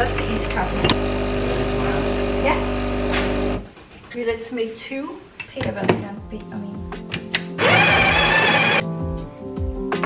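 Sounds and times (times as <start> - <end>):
espresso machine humming: 0.0 - 3.6, 7.6 - 8.8.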